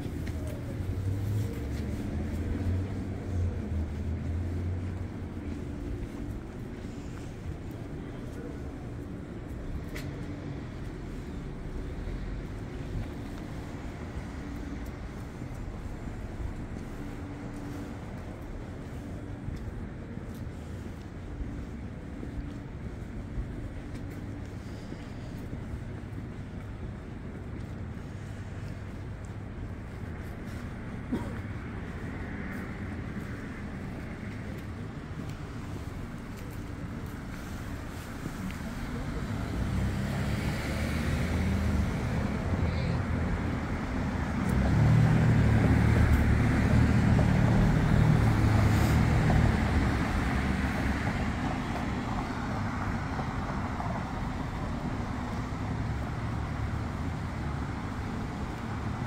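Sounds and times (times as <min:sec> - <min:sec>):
street traffic noise: 0:00.0 - 0:59.0.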